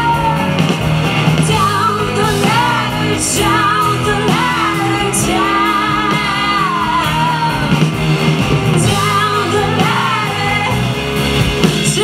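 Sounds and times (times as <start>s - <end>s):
women singing: 0.0s - 0.6s, 1.4s - 8.2s, 8.8s - 12.0s
live indie rock band playing: 0.0s - 12.0s.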